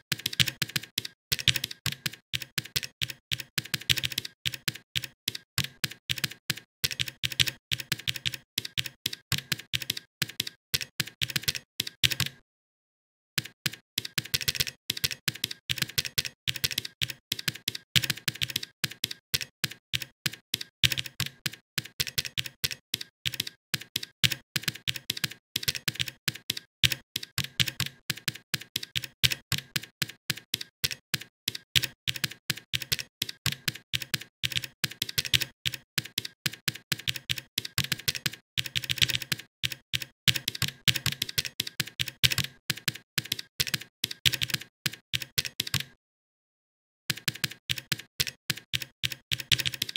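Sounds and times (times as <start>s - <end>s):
keyboard typing clicks: 0.0s - 12.4s, 13.4s - 46.0s, 47.1s - 49.9s.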